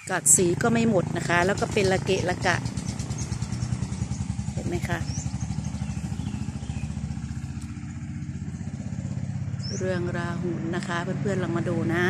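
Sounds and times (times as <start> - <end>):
small engine idling: 0.0 - 12.0.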